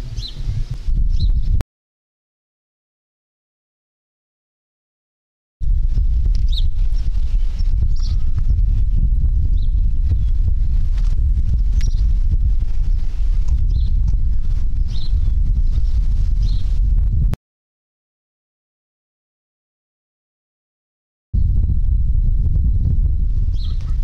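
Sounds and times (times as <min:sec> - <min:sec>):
wind buffeting a microphone: 0:00.0 - 0:01.6, 0:05.6 - 0:17.4, 0:21.4 - 0:24.0.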